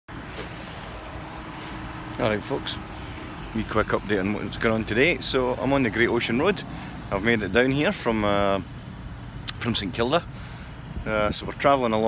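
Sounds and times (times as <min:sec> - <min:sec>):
road traffic rumble: 0:00.1 - 0:12.0.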